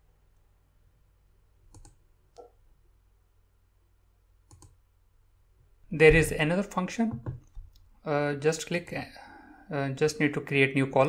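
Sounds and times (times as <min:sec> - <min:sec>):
computer mouse clicks: 0:01.7 - 0:02.6, 0:04.5 - 0:04.8.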